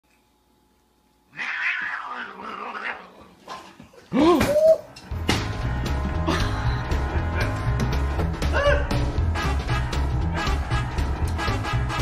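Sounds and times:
cat hissing and yowling: 1.3 - 3.3.

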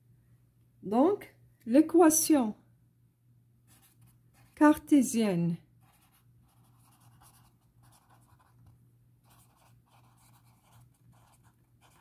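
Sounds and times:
low steady hum: 0.0 - 12.0
pen scratching on paper: 5.8 - 12.0.

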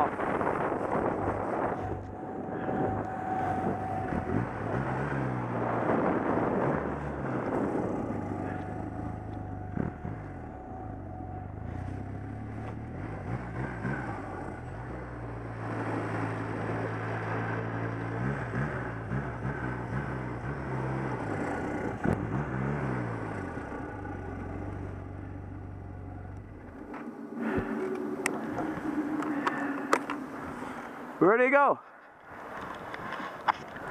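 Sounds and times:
snowmobile engine running: 0.0 - 30.8.

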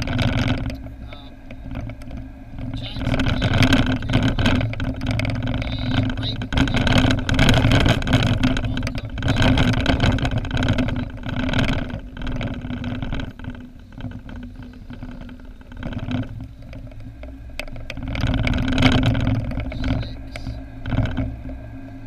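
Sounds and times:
car engine hum: 0.0 - 22.0
tyre noise: 0.0 - 22.0.

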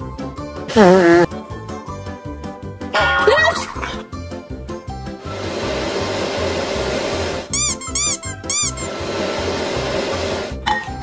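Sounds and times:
vacuum cleaner running: 5.2 - 7.5, 8.7 - 10.6
squeaky chirps: 7.5 - 8.9.

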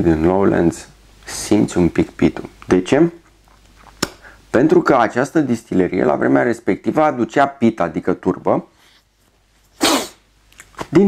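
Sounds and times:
man sneezing: 9.8 - 10.3.

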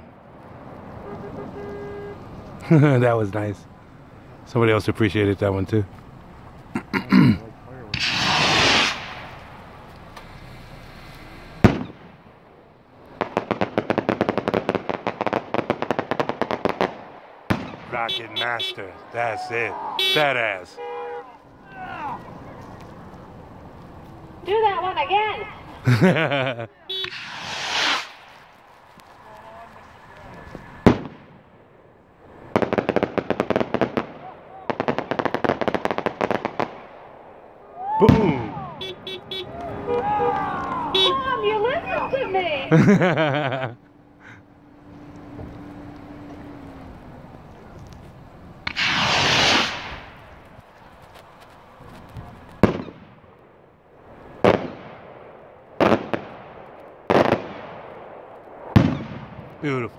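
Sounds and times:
rapid crackling: 0.0 - 37.6, 38.2 - 59.9
rocket launching whoosh: 7.9 - 9.6, 10.4 - 12.2, 27.0 - 28.6, 48.6 - 50.4
firework bang: 7.9 - 12.4, 13.2 - 18.7, 26.9 - 28.6, 30.3 - 31.7, 38.0 - 39.3, 48.6 - 50.5, 51.8 - 53.5, 54.4 - 59.6.

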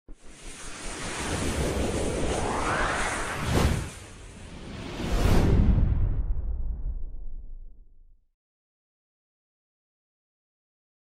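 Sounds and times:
rushing whoosh with low rumble: 0.1 - 8.0.

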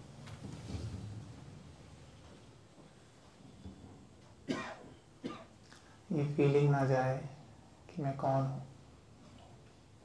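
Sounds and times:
person coughing: 4.5 - 5.6.

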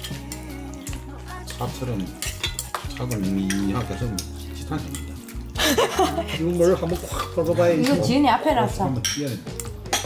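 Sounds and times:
chopsticks clicking on brass bowls: 0.0 - 5.4.

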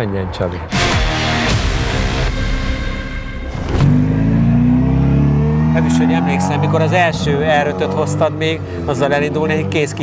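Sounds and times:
car engine accelerating: 3.4 - 10.0.

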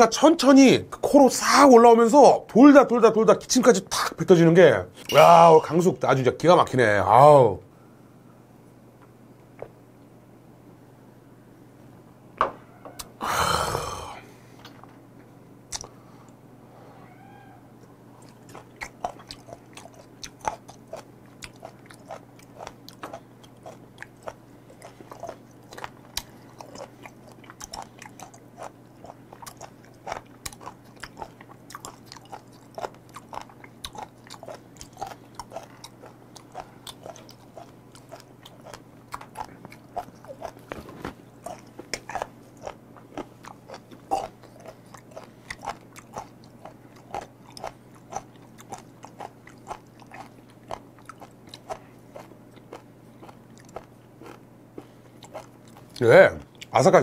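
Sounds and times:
steady low hum: 0.0 - 57.0
crunchy chewing: 17.8 - 56.7.

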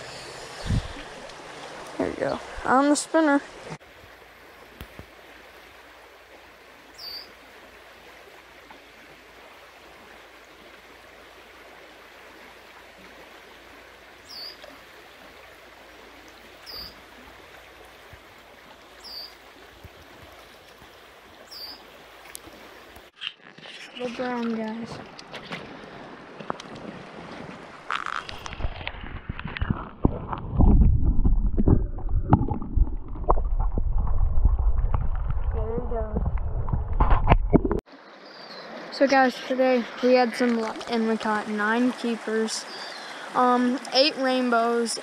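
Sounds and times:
creek water running over riffle: 0.0 - 45.0
high bird chirps: 7.0 - 7.3, 14.3 - 14.6, 16.7 - 17.0, 21.5 - 21.8
muffled underwater knocks and gurgles: 27.9 - 37.8.

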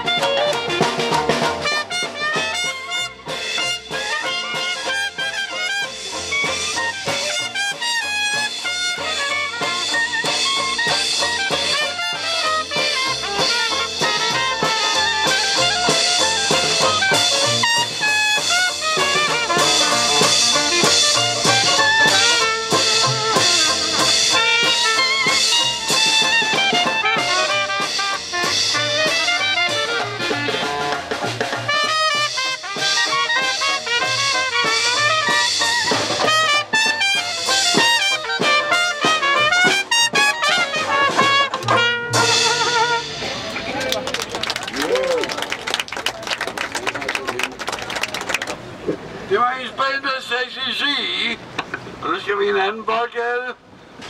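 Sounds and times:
banjo: 0.0 - 45.2
clarinet: 0.0 - 48.5
trumpet: 0.0 - 48.7
drum kit: 0.0 - 49.1
double bass: 0.0 - 49.3.

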